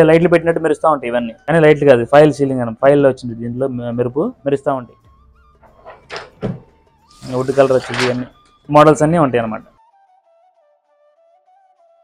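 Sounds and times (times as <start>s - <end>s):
faint background music: 0.0s - 9.9s
plastic panel rattle: 5.6s - 6.7s
short thunk: 5.7s - 6.7s.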